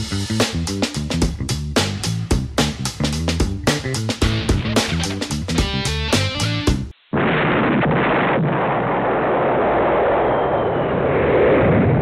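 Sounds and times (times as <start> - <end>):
explosion rumble sound effect: 7.1 - 12.0.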